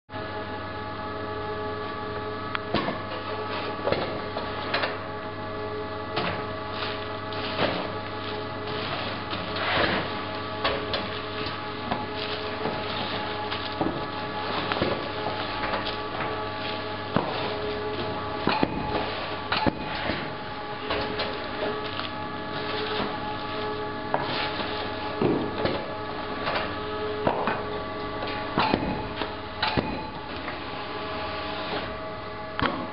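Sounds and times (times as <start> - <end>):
steady machine hum: 0.1 - 32.9.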